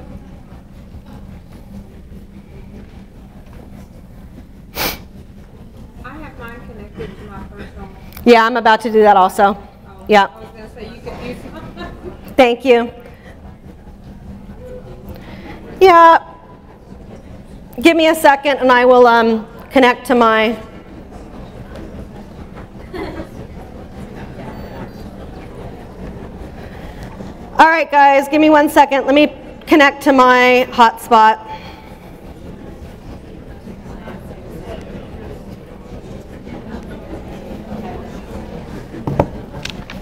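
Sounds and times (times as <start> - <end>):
murmur of voices: 0.0 - 27.6, 31.0 - 40.0
meeting room background rumble: 0.0 - 40.0.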